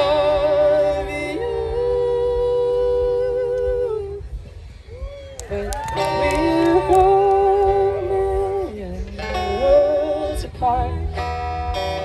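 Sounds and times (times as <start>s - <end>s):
woman and man singing harmony: 0.0s - 4.3s, 5.5s - 11.2s.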